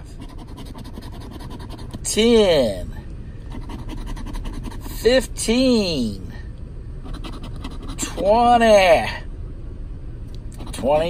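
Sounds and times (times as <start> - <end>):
scratcher scraping ticket: 0.0 - 2.2.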